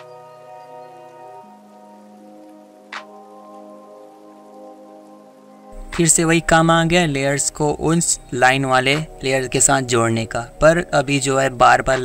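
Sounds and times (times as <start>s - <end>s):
soft synth chords: 0.0s - 12.0s.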